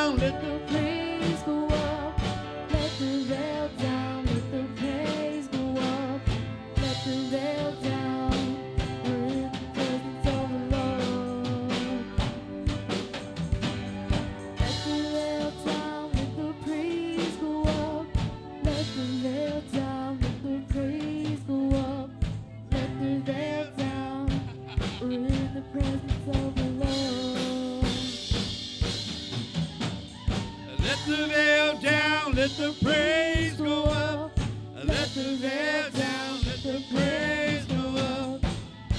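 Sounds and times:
person singing: 0.0 - 12.7, 14.2 - 28.4, 30.6 - 38.9
acoustic guitar: 0.0 - 38.9
drum kit beat: 0.0 - 38.9
keyboard playing: 0.0 - 38.9.

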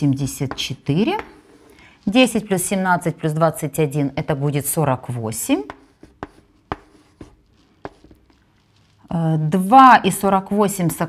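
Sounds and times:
chalk tapping on chalkboard: 0.5 - 1.7, 5.6 - 8.3
chalk scratching: 0.5 - 1.8, 5.4 - 8.4.

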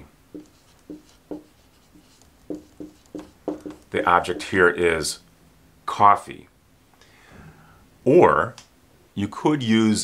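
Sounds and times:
marker squeaking on whiteboard: 0.3 - 4.6.

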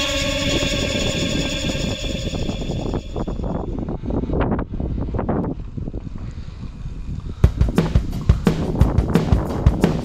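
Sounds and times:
background music held tones: 0.0 - 3.8
wind on microphone: 0.0 - 10.0
bicycle tyres rolling on asphalt: 5.5 - 7.4.

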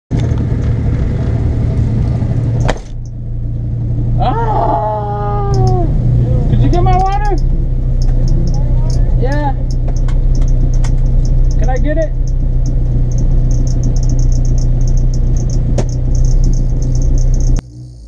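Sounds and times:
car engine idling: 0.1 - 18.0
person exclaiming: 4.2 - 6.5.

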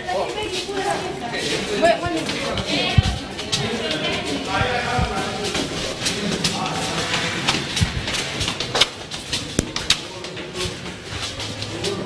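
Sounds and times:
indistinct crowd voices: 0.0 - 12.0
sharp clicks and knocks: 2.0 - 10.7.

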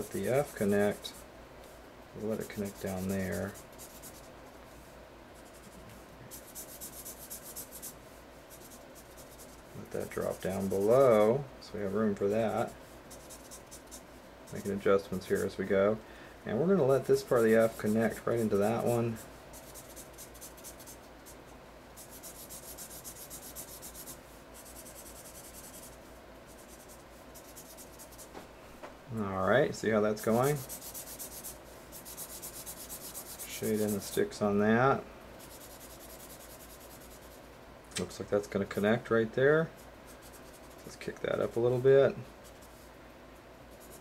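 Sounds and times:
marker scratching on paper: 2.2 - 4.8, 5.4 - 11.3, 12.2 - 15.6, 16.9 - 21.4, 22.0 - 28.4, 30.1 - 34.2, 35.4 - 37.5, 39.7 - 42.9, 43.7 - 44.0.

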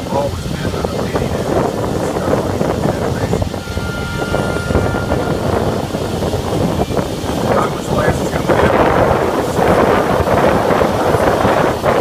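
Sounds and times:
tram running noise: 0.0 - 12.0
wind buffeting microphone: 0.0 - 12.0.

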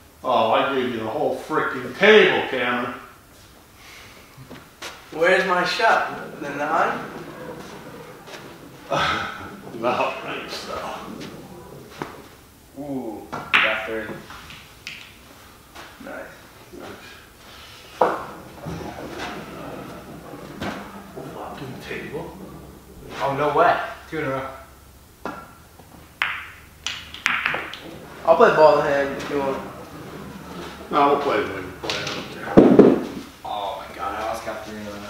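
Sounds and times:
voices in a room: 0.0 - 35.0
pool balls clicking: 0.6 - 35.0.

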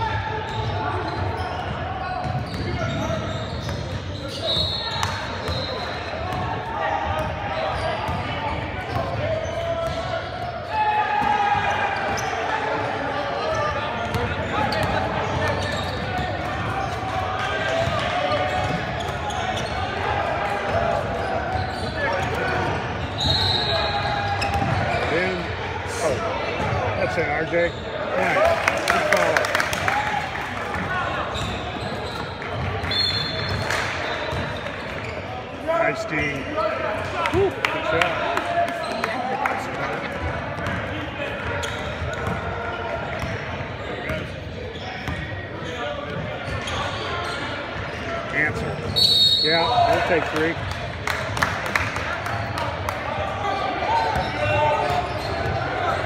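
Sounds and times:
crowd chatter: 0.0 - 56.0
basketball bouncing on court: 0.5 - 4.3, 6.3 - 6.5, 13.6 - 17.1, 24.4 - 25.1, 40.2 - 43.4, 45.0 - 46.8.

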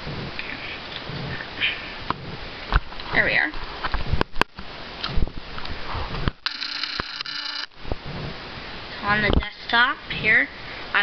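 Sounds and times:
camera zoom motor whining: 6.4 - 7.7.

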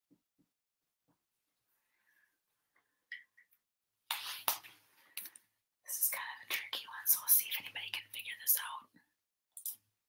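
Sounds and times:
person whispering: 5.8 - 9.7.

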